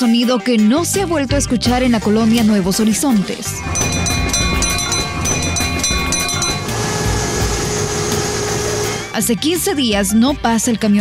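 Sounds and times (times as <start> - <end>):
garbage truck bell ringing: 3.4 - 8.9
truck engine and compactor humming: 3.6 - 9.2.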